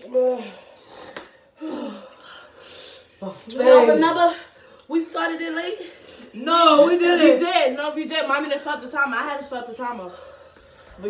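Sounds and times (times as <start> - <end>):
person gasping and breathing hard: 0.3 - 3.1.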